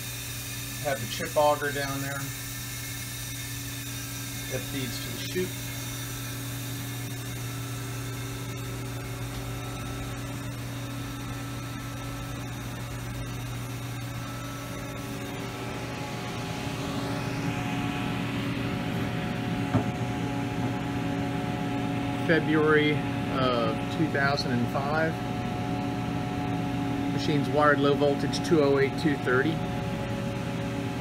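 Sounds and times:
electrical mains hum: 0.0s - 31.0s
fan noise: 0.0s - 31.0s.

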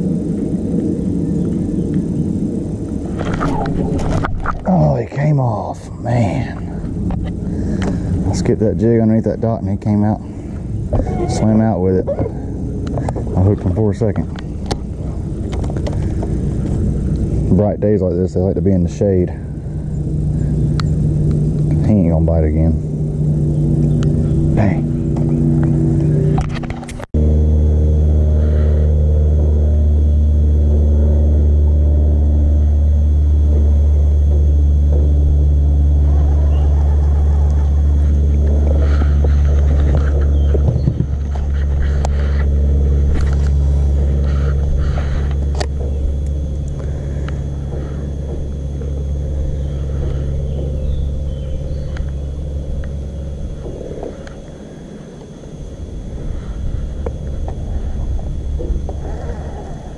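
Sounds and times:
electric trolling motor hum: 0.0s - 59.9s.

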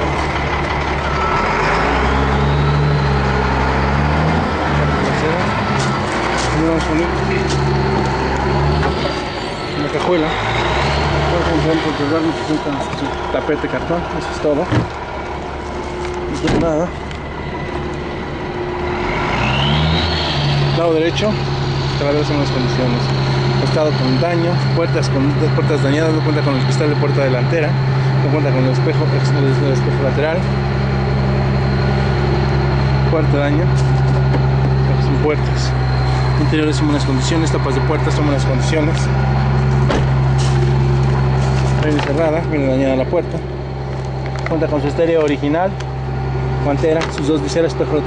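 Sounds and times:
climbing engine whine: 0.0s - 48.0s
vehicle engine running: 0.0s - 48.0s.

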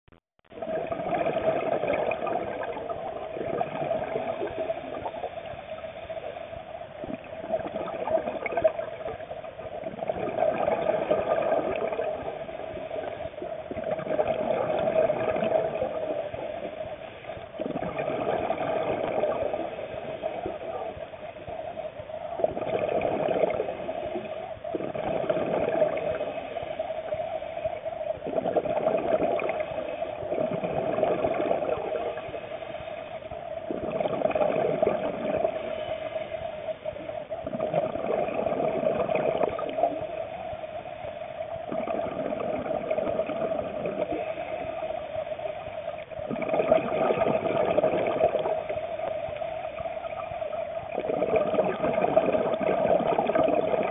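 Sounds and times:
exhaled bubbles rushing: 0.5s - 53.9s
steady hum: 0.5s - 53.9s.

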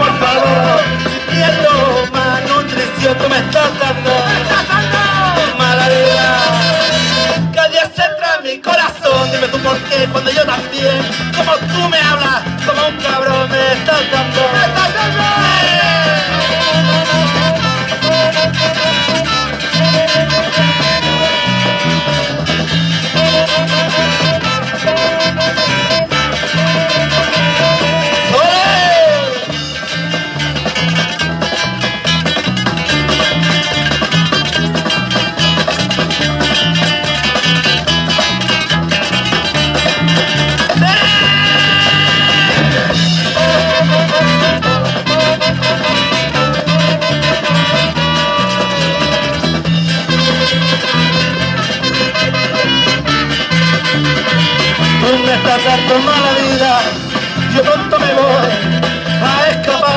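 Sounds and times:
bass pulse: 0.0s - 7.6s, 9.2s - 59.9s
trumpet: 0.0s - 30.2s, 39.4s - 59.9s
drums: 0.0s - 59.9s
strummed acoustic guitars: 0.0s - 59.9s
saxophone: 3.0s - 7.5s, 14.4s - 30.3s, 39.0s - 59.9s.

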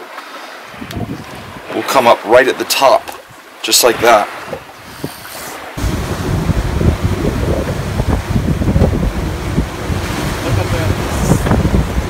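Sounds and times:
boat wake churning: 0.0s - 12.0s
choppy sea: 0.0s - 12.0s
wind buffeting microphone: 0.7s - 1.9s, 3.0s - 12.0s.

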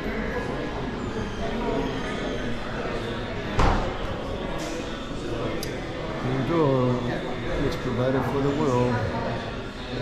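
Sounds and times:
chatter of people talking: 0.0s - 10.0s.

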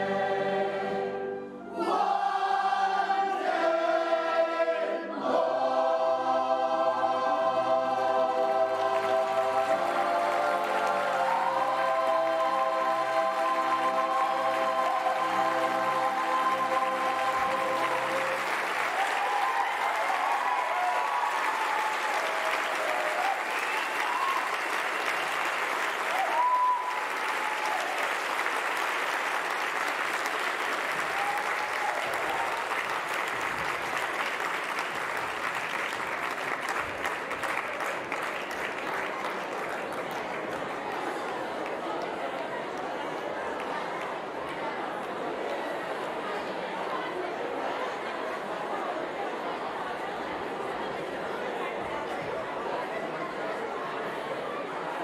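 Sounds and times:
audience applauding and cheering: 7.6s - 47.0s.

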